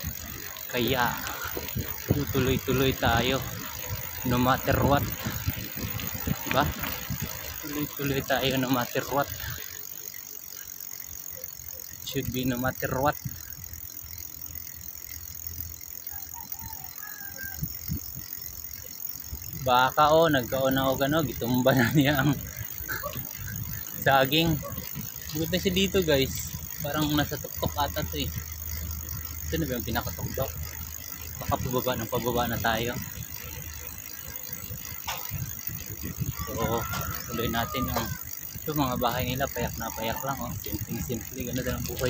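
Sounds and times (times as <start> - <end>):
bicycle tyres rumbling on concrete: 0.0 - 42.0
wind: 0.0 - 42.0
bike knocks: 34.9 - 35.7.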